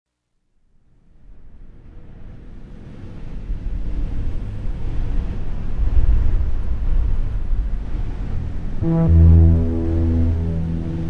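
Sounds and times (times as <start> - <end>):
low noisy rumble: 3.4 - 11.0.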